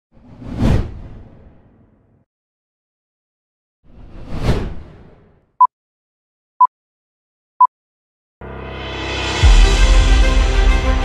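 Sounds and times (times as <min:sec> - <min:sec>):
cinematic whoosh: 0:08.4 - 0:11.0.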